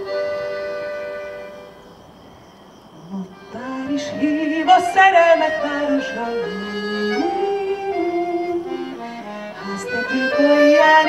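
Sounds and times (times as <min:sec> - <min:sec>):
accordion chord: 0:00.0 - 0:02.0, 0:03.4 - 0:11.0.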